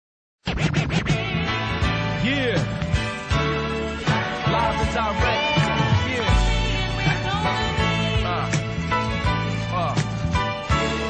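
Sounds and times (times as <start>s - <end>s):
turntable scratching: 0.4s - 1.6s
hip-hop instrumental beat: 0.5s - 11.0s.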